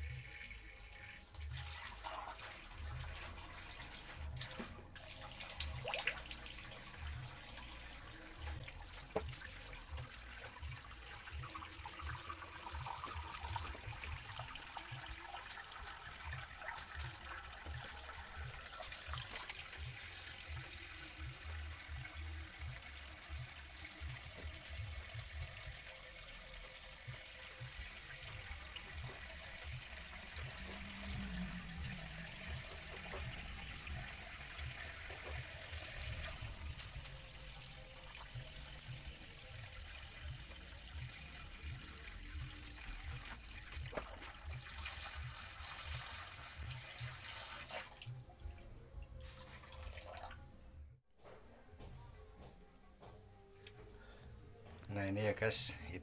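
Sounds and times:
water pouring from hose into pool: 0:00.0 - 0:48.2, 0:49.2 - 0:50.4.

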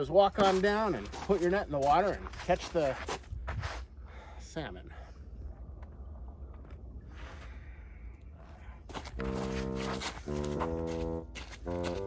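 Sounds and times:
footsteps on crusted snow: 0:00.0 - 0:03.9, 0:08.8 - 0:12.0
wind rumbling on microphone: 0:03.2 - 0:04.0.

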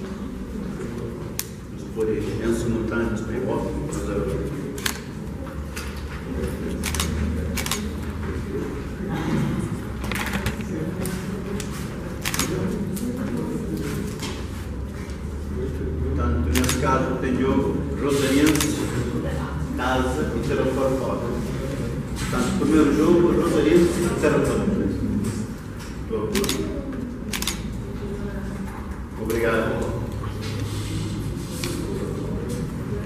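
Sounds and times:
low voices: 0:00.0 - 0:33.0.

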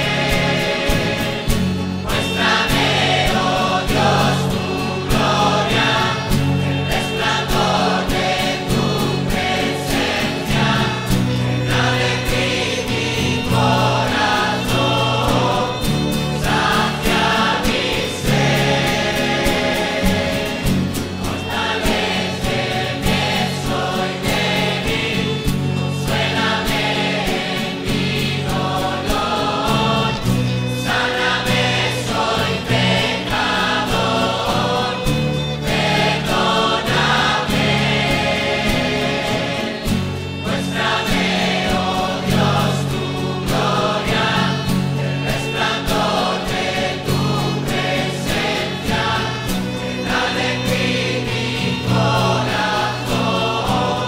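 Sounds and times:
choir singing a hymn: 0:00.0 - 0:54.0
instrumental accompaniment: 0:00.0 - 0:54.0.

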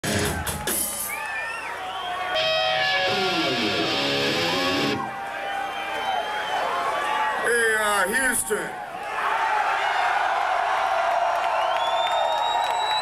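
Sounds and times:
amplified electric guitar: 0:02.4 - 0:05.1.

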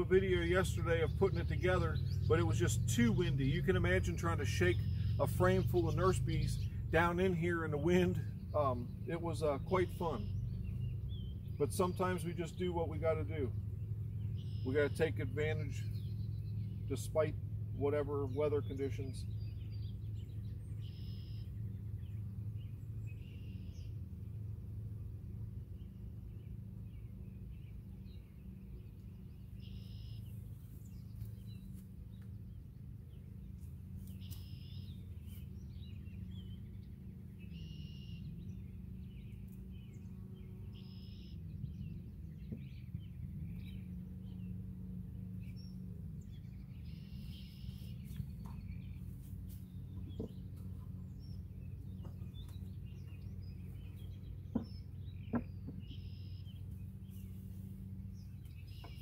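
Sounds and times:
honeybees humming: 0:00.0 - 0:59.0
songbirds chirping: 0:00.0 - 0:59.0
wooden hive boxes knocking: 0:54.4 - 0:56.0.

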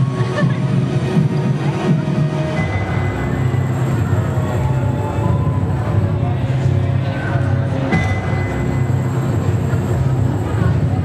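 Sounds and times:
low rumbling soundtrack over loudspeakers: 0:00.0 - 0:11.0.

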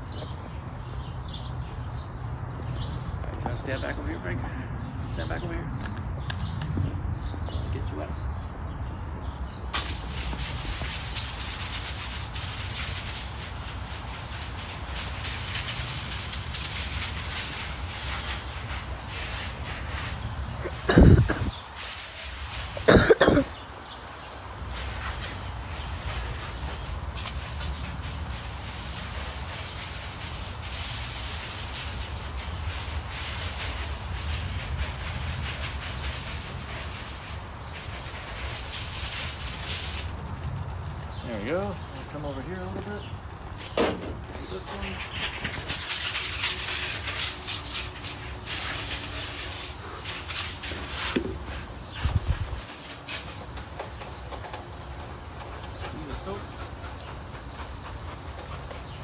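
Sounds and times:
hose nozzle spraying water: 0:09.7 - 0:40.2, 0:41.1 - 0:59.0.

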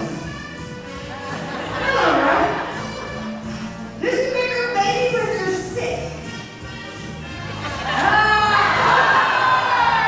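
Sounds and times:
crowd cheering and whooping: 0:07.8 - 0:10.0.

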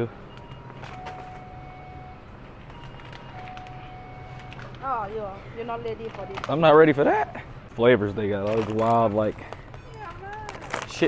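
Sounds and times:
plastic chip bag crinkling: 0:08.3 - 0:11.0.

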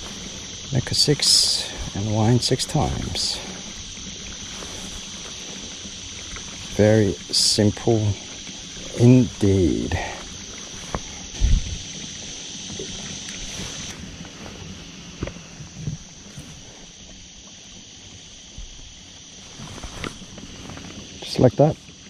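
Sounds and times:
low hum: 0:00.0 - 0:21.0
steady high hiss: 0:00.0 - 0:22.0.

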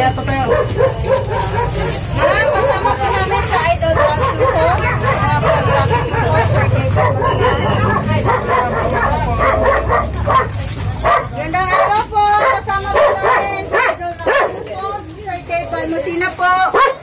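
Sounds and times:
dog barking and yipping: 0:00.0 - 0:15.0, 0:16.4 - 0:17.0
people's voices: 0:00.0 - 0:17.0.

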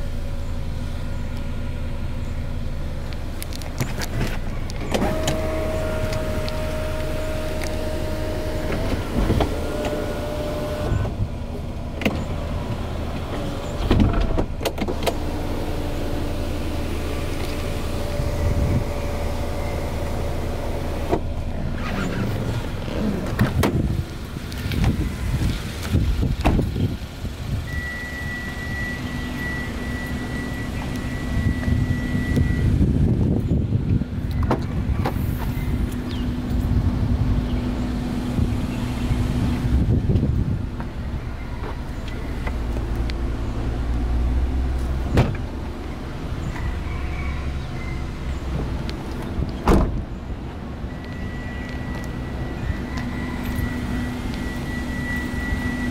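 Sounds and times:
low rumbling noise: 0:00.0 - 0:55.9
sunroof motor whining: 0:04.9 - 0:11.2
high beep: 0:27.7 - 0:32.7, 0:50.9 - 0:55.9.

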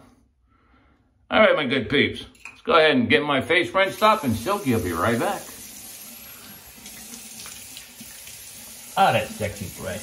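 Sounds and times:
water running from sink tap: 0:03.8 - 0:10.0.

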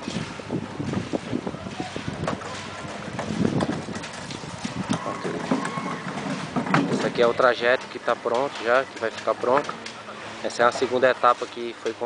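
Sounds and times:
wind buffeting microphone: 0:00.0 - 0:09.7
footsteps on gravel: 0:00.0 - 0:09.9
wheelbarrow rattling over gravel: 0:00.0 - 0:12.0.

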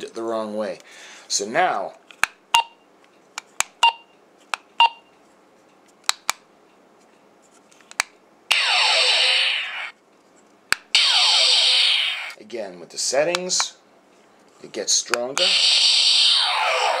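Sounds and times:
electronic blaster firing effect: 0:08.5 - 0:09.9, 0:11.0 - 0:12.4, 0:15.4 - 0:17.0.

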